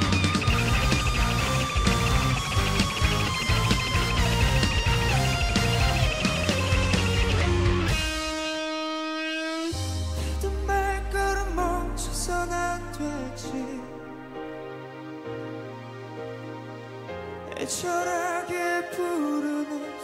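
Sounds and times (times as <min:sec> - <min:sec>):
live rock band instrumental: 0:00.0 - 0:10.6.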